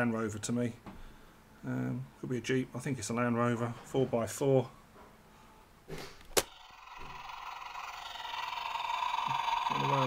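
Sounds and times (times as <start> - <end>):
toy vehicle electronic sound effect: 6.4 - 10.0.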